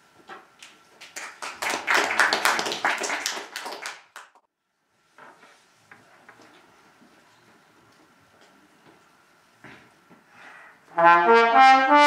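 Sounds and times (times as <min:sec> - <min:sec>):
audience applauding: 0:01.0 - 0:04.4.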